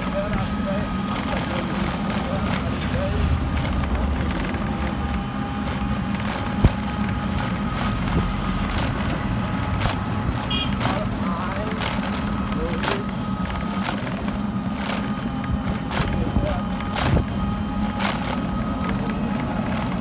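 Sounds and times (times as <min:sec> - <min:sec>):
vehicle engine drone: 0:00.0 - 0:20.0.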